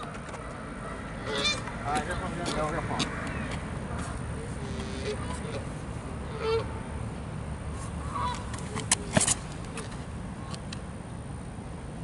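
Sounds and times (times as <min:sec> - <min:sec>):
geese honking: 0:01.2 - 0:01.7, 0:04.6 - 0:06.8.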